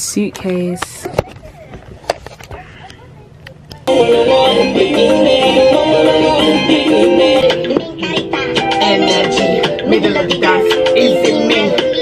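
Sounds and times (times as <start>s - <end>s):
loud background music: 3.9s - 12.0s.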